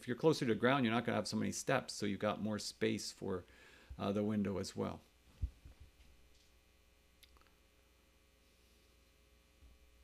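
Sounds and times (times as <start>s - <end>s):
faint low hum: 0.0s - 10.0s
soft low thump: 5.4s - 5.9s.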